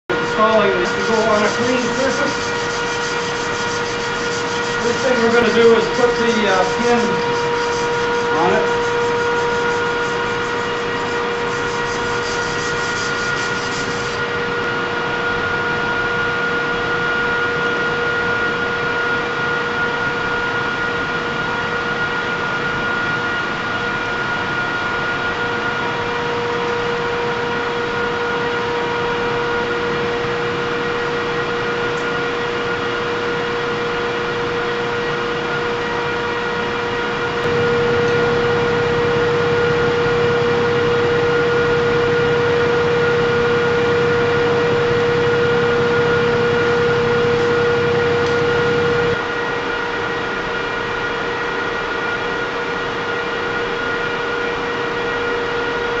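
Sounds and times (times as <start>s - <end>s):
machine hum with fixed tones: 0.1s - 56.0s.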